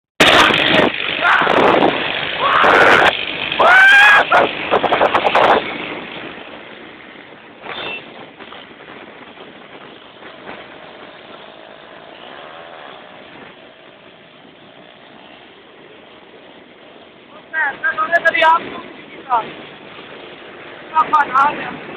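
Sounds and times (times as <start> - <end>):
motorcycle engine: 0.2 - 21.1
street rumble: 0.2 - 21.9.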